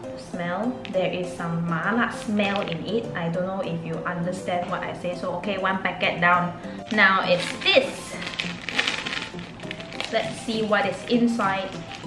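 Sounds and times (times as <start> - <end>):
plastic sachet crinkling: 2.1 - 2.9, 6.9 - 12.0
plastic sachet tearing: 2.2 - 2.9, 6.9 - 12.0.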